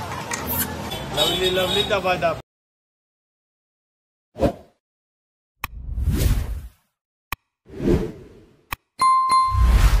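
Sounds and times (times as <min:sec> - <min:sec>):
bright bell-like ding: 0:09.0 - 0:09.7
whooshes: 0:09.5 - 0:10.0.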